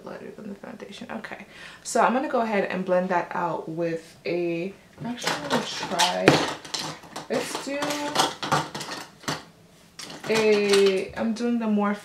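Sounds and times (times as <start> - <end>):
makeup brushes clinking: 5.1 - 9.4, 10.0 - 11.1.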